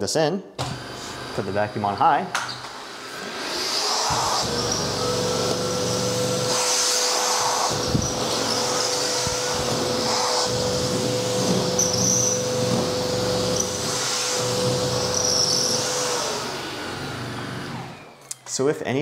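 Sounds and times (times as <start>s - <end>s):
vacuum cleaner whine: 0.6s - 18.8s
vacuum head sweeping over table: 5.6s - 14.8s.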